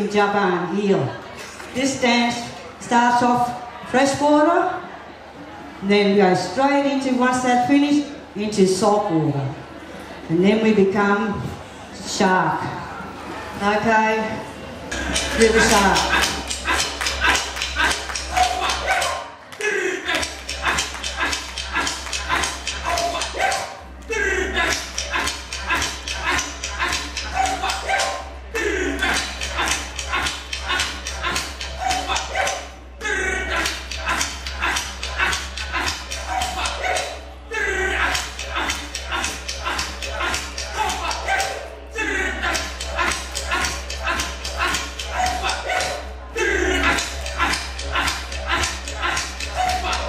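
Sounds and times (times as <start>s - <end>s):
voices chanting: 14.9s - 50.0s
fast sharp clicks: 20.1s - 23.6s, 42.4s - 46.0s.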